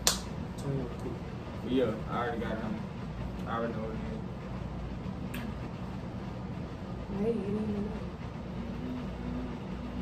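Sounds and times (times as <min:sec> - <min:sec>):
faint hum: 0:00.0 - 0:10.0
low background rumble: 0:00.0 - 0:10.0.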